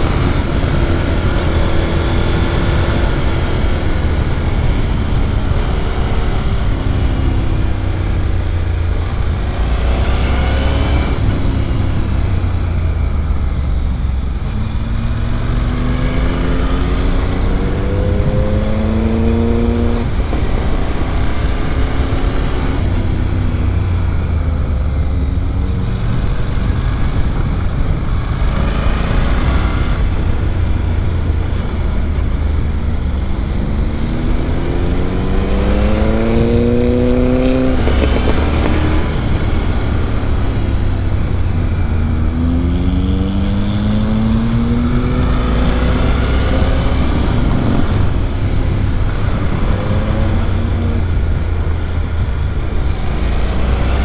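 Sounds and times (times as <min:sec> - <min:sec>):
motorcycle engine accelerating: 0:00.0 - 0:54.0
wind rumble on microphone: 0:00.0 - 0:54.0.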